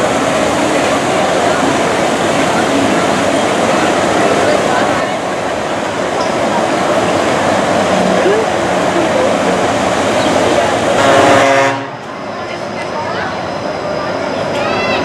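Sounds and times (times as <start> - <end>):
crowd voices: 0.0 - 15.0
monorail train rushing past: 0.0 - 15.0.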